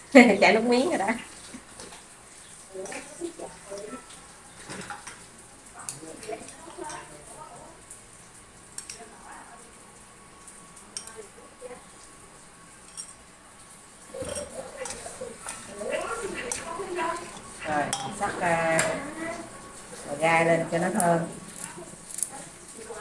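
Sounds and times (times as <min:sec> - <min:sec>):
spoon clinking on ceramic bowl: 0:12.9 - 0:13.2, 0:16.5 - 0:19.0
chopsticks against steel bowl: 0:14.1 - 0:19.2.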